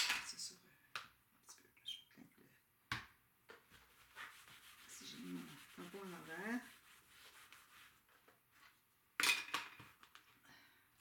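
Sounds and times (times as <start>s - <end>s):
hard object clattering on table: 9.2s - 10.0s.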